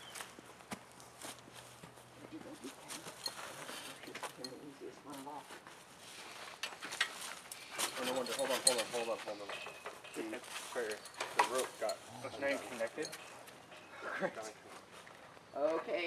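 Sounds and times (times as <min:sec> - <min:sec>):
hooves and boots shifting on leaves: 0:10.2 - 0:12.9.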